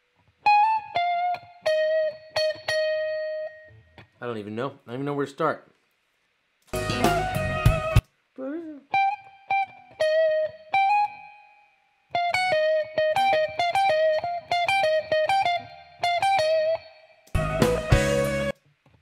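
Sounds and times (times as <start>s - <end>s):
full-band playback: 6.6s - 8.1s, 17.3s - 18.6s.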